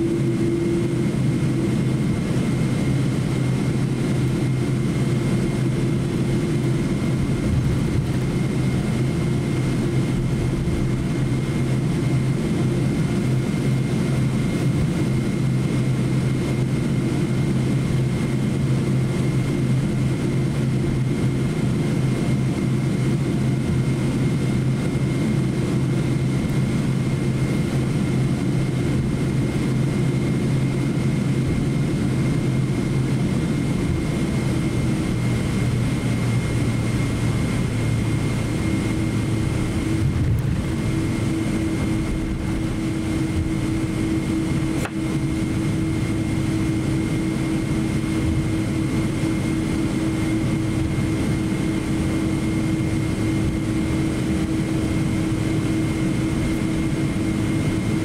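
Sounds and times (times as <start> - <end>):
jet engines humming: 0.0 - 58.0.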